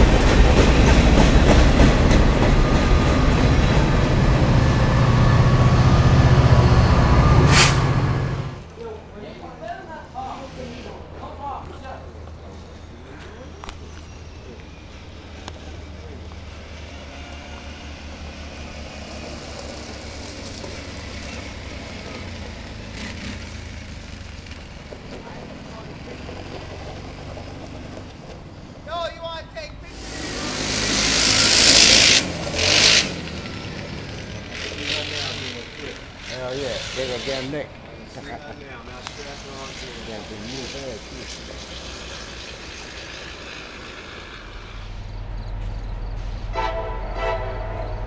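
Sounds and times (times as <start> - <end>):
engine revving and pulling away: 0.0 - 8.7, 12.4 - 28.6, 29.9 - 46.5
quad bike engine idling: 32.4 - 37.9.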